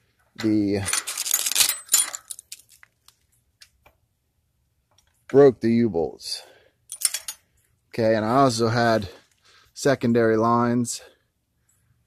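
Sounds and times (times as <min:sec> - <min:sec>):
steel hardware clinking and rattling: 0:00.4 - 0:02.9, 0:06.9 - 0:07.7.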